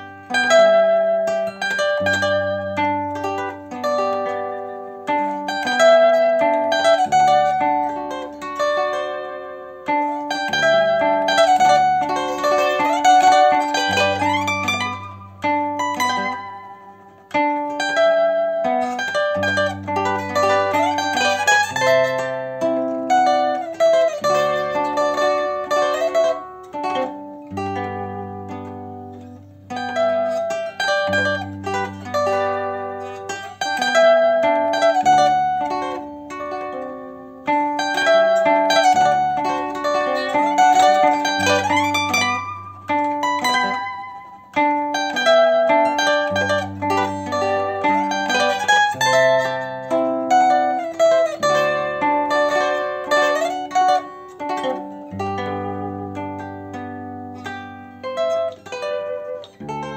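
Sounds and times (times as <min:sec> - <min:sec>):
zither plucked melody: 0:00.0 - 0:59.9.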